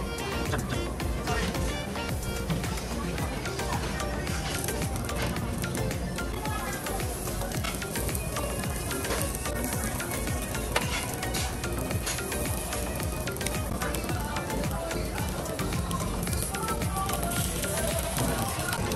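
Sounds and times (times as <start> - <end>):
background music: 0.0 - 18.9
food sizzling and bubbling: 0.2 - 18.9.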